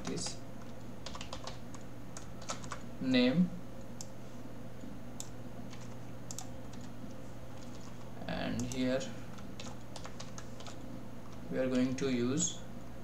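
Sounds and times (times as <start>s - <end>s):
computer keyboard typing: 0.0s - 2.8s, 5.2s - 7.0s, 7.6s - 11.4s
low steady hum: 0.0s - 13.0s.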